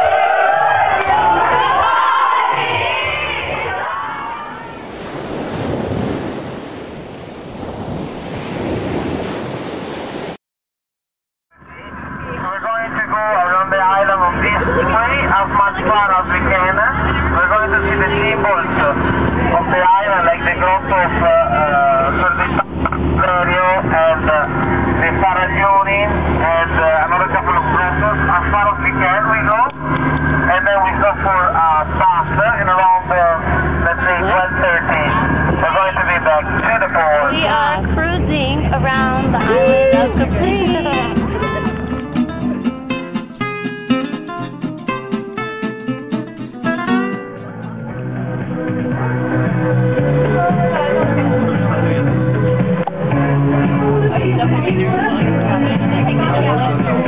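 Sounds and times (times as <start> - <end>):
people talking: 11.7 - 29.8, 30.5 - 42.5, 54.0 - 57.0
motorboat engine droning: 14.1 - 36.8, 37.5 - 43.4
voices talking: 37.0 - 46.2
boat engine humming: 37.5 - 47.8
acoustic guitar music: 38.7 - 47.9.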